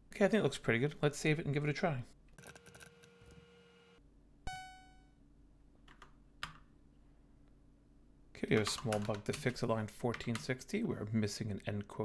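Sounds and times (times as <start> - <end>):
electronic beep: 4.5 - 5.1
computer keyboard key clicks: 8.6 - 10.5.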